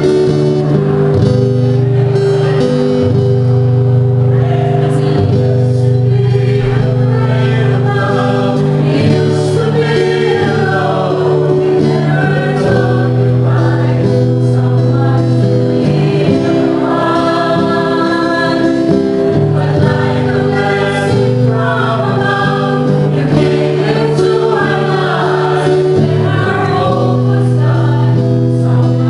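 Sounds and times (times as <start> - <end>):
acoustic guitar: 0.0 - 29.0
small choir singing: 0.0 - 29.0.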